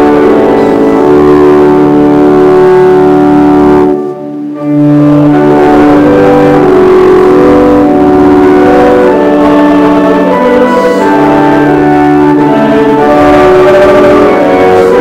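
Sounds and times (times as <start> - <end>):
organ playing a hymn: 0.0 - 15.0.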